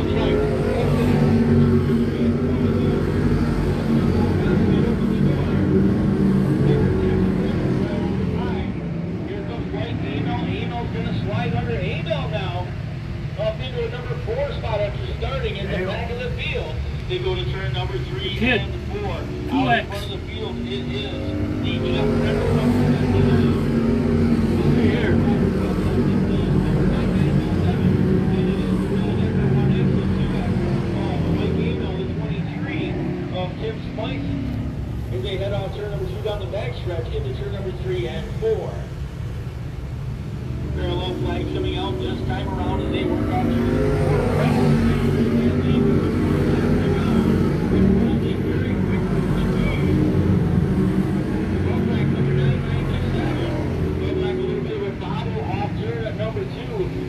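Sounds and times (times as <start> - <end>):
voices talking: 0.0 - 39.0, 40.2 - 57.0
race car engines droning: 0.0 - 57.0.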